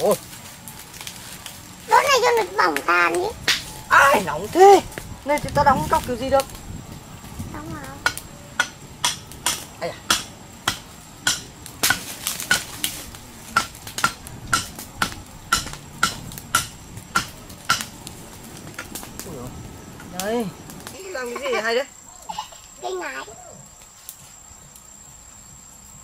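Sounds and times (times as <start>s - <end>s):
voices: 0.0s - 24.9s
machete chopping branch: 2.3s - 3.8s, 8.0s - 19.2s.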